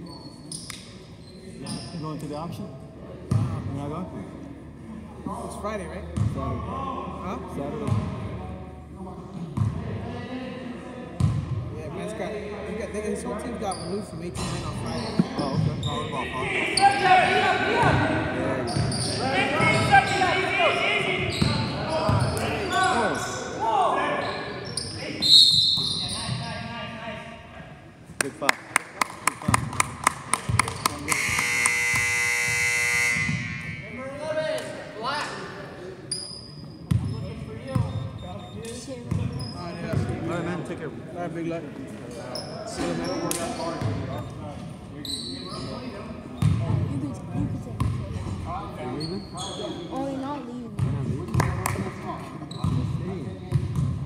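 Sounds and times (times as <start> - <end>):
indistinct voices: 14.5 - 23.9
scoreboard horn: 31.0 - 33.9.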